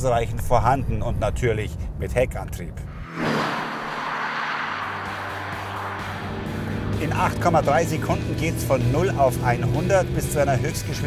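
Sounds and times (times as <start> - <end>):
car passing at speed: 2.8 - 9.5
background music with low notes: 6.5 - 11.0.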